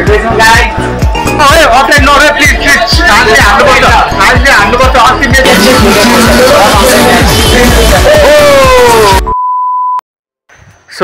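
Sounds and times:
music: 0:00.0 - 0:09.3
electronic beep tone: 0:09.2 - 0:10.0.

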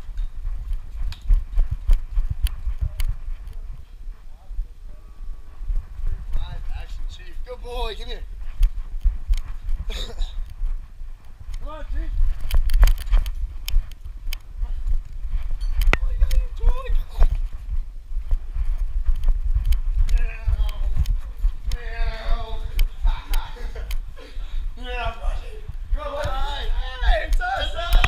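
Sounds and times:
camera handling rumble: 0:12.2 - 0:16.6.

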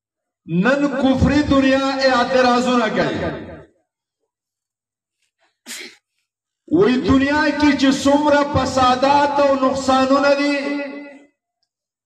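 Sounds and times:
man speaking: 0:00.5 - 0:03.5, 0:06.7 - 0:11.2.

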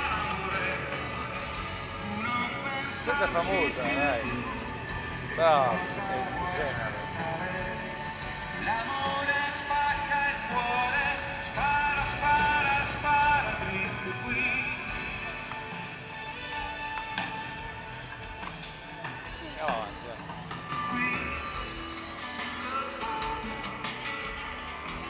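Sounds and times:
distant live pop music: 0:00.0 - 0:25.0
people talking: 0:02.0 - 0:15.7, 0:18.8 - 0:25.0.

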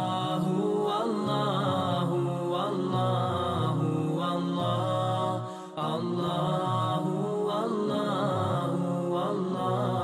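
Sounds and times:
chanted vocal line: 0:00.0 - 0:10.0.

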